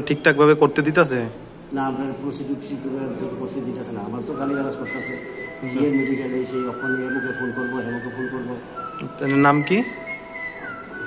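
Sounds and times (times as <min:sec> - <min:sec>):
high whistling tone: 0:04.2 - 0:11.0.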